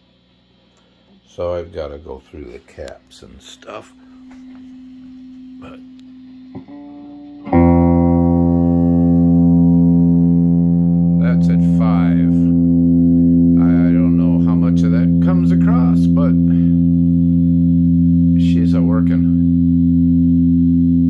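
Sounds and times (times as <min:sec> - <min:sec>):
electric guitar sustained note: 0:01.3 - 0:21.0.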